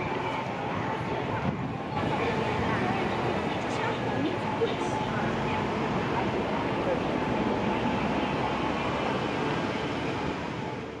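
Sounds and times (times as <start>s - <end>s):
crowd hubbub: 0.0s - 11.0s
passing car and bus traffic: 0.0s - 11.0s.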